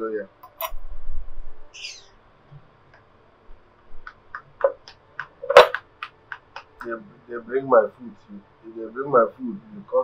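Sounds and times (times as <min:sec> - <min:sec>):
high bird chirp: 0:01.7 - 0:02.2.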